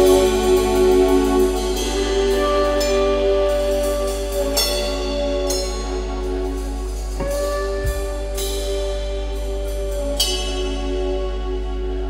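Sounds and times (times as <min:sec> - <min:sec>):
bass guitar: 0:00.0 - 0:12.0
drum kit: 0:00.0 - 0:12.0
keyboard: 0:00.0 - 0:12.0.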